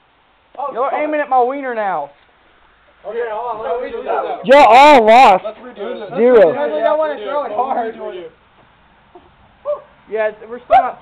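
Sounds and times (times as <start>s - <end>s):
quiet outdoor ambience: 0.0s - 11.0s
man speaking: 3.0s - 8.4s.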